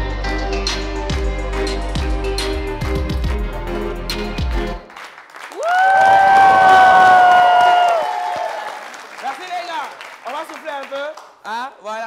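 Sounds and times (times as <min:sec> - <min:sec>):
audience applauding and cheering: 0:04.4 - 0:11.4
long high-pitched shout: 0:05.6 - 0:08.7.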